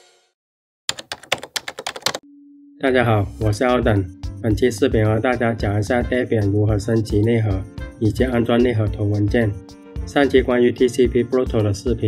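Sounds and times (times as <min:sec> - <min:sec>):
rapid keyboard typing: 0:00.9 - 0:02.2
intro music: 0:02.2 - 0:11.8.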